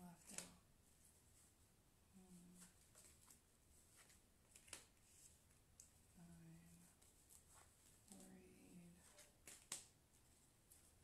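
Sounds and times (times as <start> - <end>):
cards being shuffled: 2.5 - 5.9, 9.0 - 10.0.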